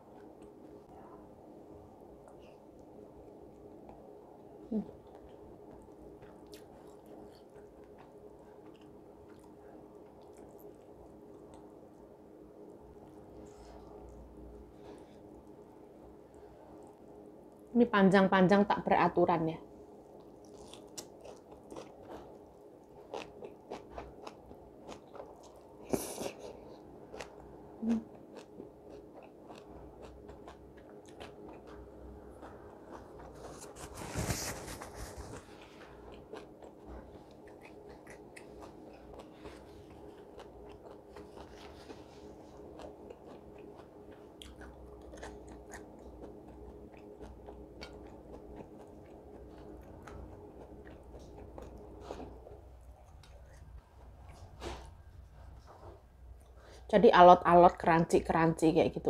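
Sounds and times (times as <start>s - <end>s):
food crunching: 4.9s - 14.3s, 20.1s - 54.9s
chewing and biting food: 4.9s - 15.6s, 20.1s - 55.7s.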